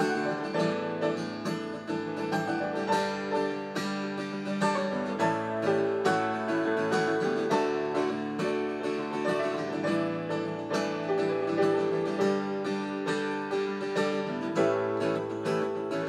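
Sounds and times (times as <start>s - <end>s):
acoustic guitar strumming: 0.0s - 16.0s.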